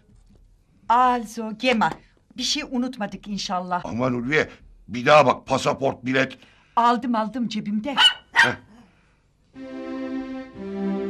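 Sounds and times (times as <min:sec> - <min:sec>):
dog barking: 0:08.0 - 0:08.8
soft string music: 0:09.5 - 0:11.0.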